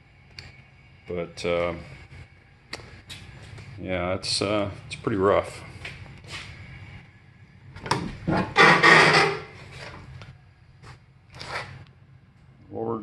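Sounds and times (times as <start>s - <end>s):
rusty door scraping: 8.2s - 10.0s.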